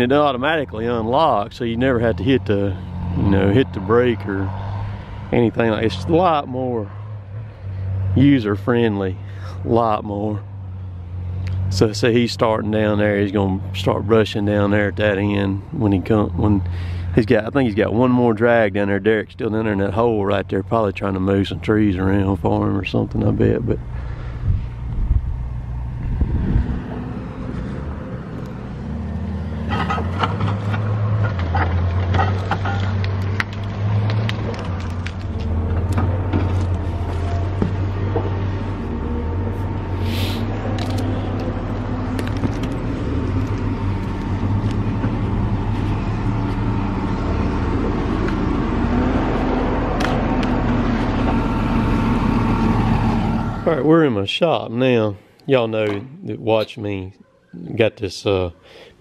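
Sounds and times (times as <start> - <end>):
diesel engine running: 0.0 - 54.2
metallic clanks: 29.6 - 33.6.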